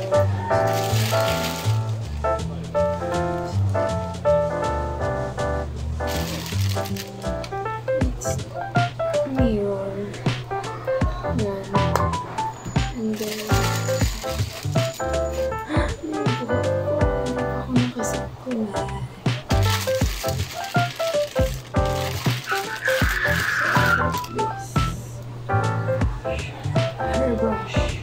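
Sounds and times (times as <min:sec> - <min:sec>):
upbeat instrumental music: 0:00.0 - 0:28.0.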